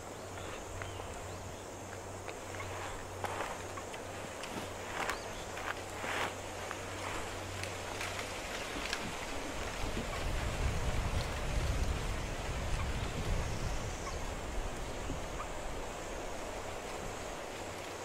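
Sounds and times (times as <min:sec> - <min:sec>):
low wind rumble on microphone: 0:00.0 - 0:18.0
steady hiss: 0:00.0 - 0:18.0.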